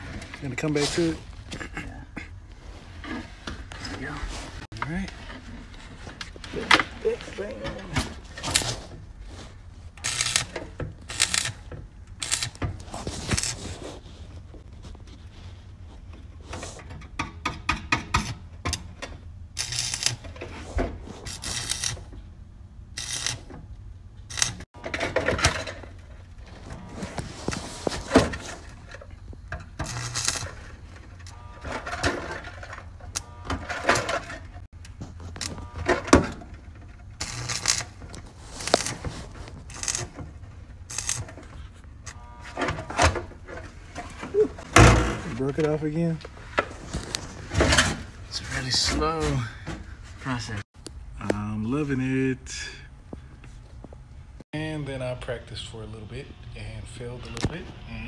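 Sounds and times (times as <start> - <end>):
arc welder crackling: 6.5 - 8.9, 9.8 - 13.8, 18.1 - 20.4, 21.2 - 22.2, 22.8 - 24.7, 25.4 - 42.6.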